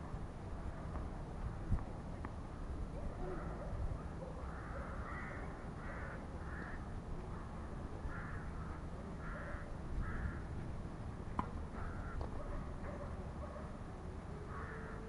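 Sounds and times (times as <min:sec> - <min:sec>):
crow cawing: 0:04.5 - 0:06.8, 0:08.1 - 0:10.4, 0:11.8 - 0:12.2, 0:14.5 - 0:15.0.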